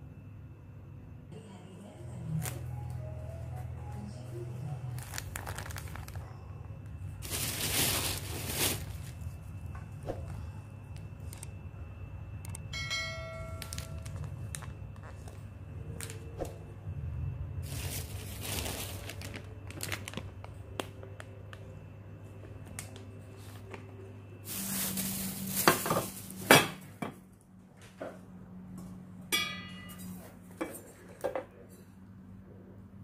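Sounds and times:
bright bell ding: 12.7s - 14.1s.

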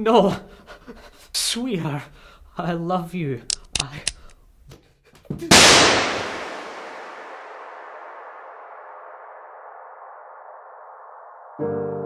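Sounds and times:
revolver shot echoing: 5.5s - 10.2s.

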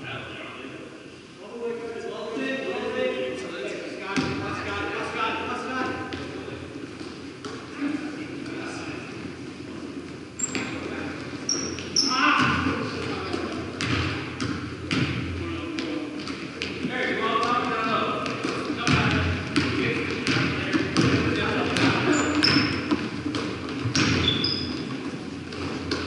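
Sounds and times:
sneaker squeaks: 9.6s - 15.1s, 21.0s - 26.0s
basketball bouncing on wooden floor: 11.7s - 26.0s.

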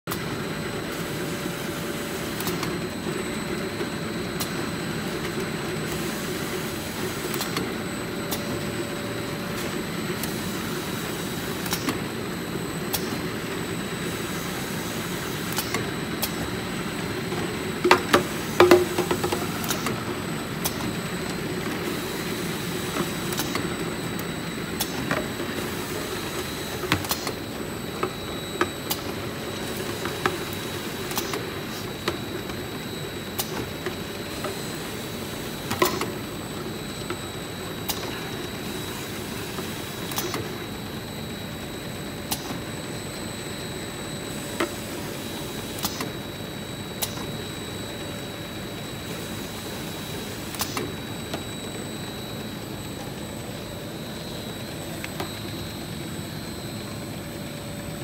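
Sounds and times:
conveyor and motor hum: 0.1s - 58.0s.

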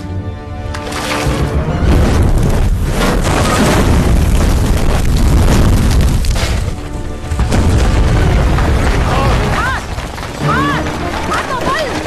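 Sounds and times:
background film score: 0.0s - 12.0s
booming rumbles: 1.7s - 12.0s.

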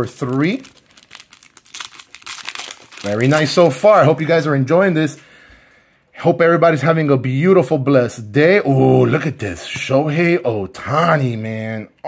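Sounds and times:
foil wrapper crinkling and tearing: 0.0s - 3.9s.

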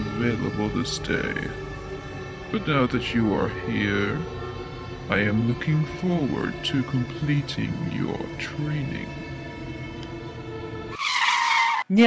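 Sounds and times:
low sustained music tones: 0.0s - 11.0s
loud screeching sound effect: 10.9s - 11.9s.

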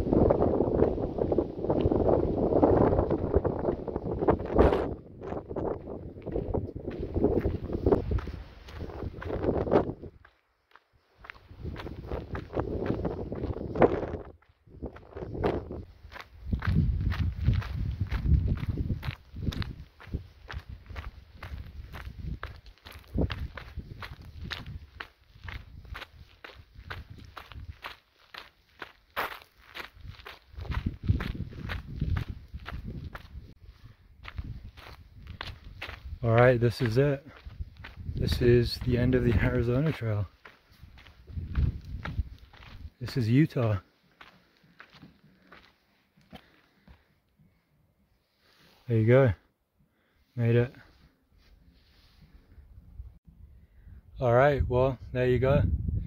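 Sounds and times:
wind on microphone: 0.0s - 10.2s, 11.2s - 28.0s, 29.8s - 40.0s, 40.7s - 43.1s, 52.2s - 56.0s
footsteps on gravel trail: 0.1s - 47.5s.

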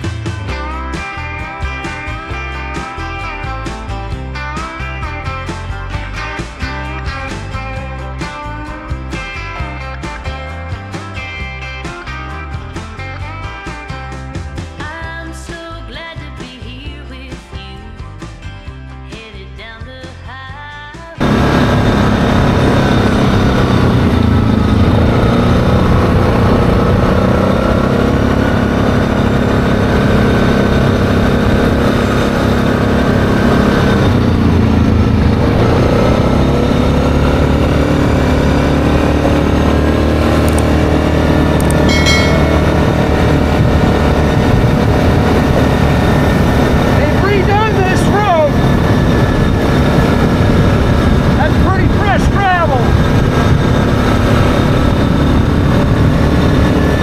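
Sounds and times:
atv engine running: 0.0s - 57.0s
wavering high-pitched sounds: 41.7s - 44.2s.

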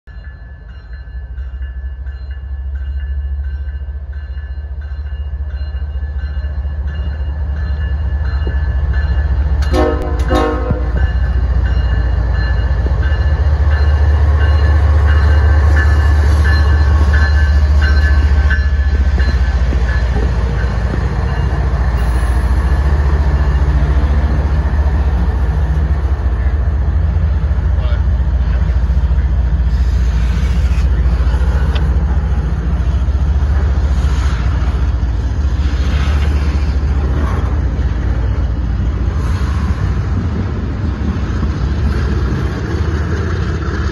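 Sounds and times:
diesel locomotive rumble: 0.1s - 43.9s
train horn blast: 9.6s - 11.0s.

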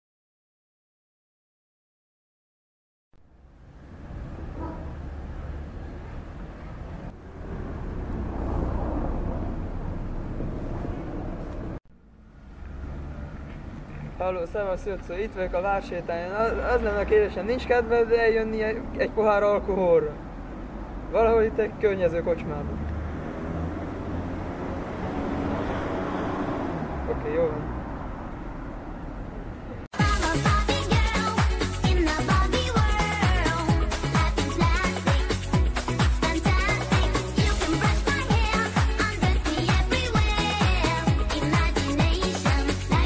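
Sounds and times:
distant traffic rumble: 3.3s - 29.9s.

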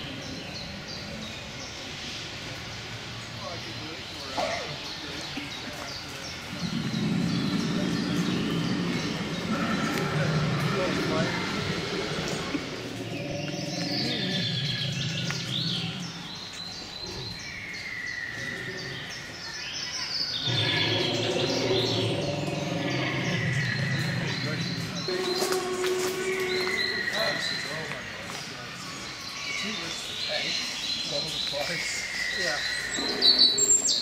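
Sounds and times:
people's voices: 0.0s - 17.4s, 18.3s - 34.0s
birds chirping: 0.0s - 34.0s.

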